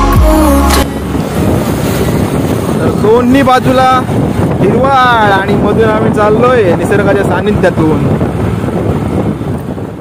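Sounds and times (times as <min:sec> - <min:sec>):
wind buffeting microphone: 0:00.8 - 0:10.0.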